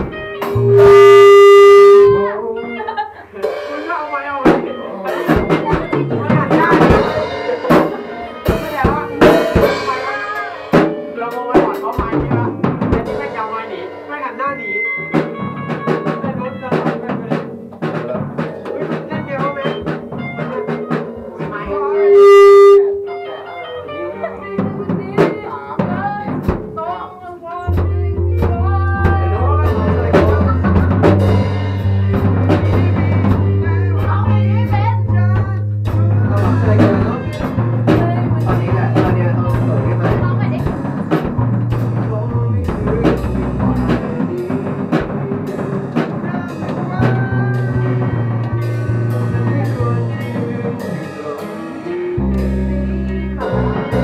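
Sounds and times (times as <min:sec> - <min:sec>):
person singing: 0:00.0 - 0:03.8, 0:20.3 - 0:40.9, 0:41.7 - 0:54.0
rock band playing live: 0:00.0 - 0:54.0
loud held tones: 0:00.2 - 0:02.5, 0:19.5 - 0:24.7
low bass note: 0:00.4 - 0:02.5, 0:21.5 - 0:23.6, 0:51.9 - 0:54.0.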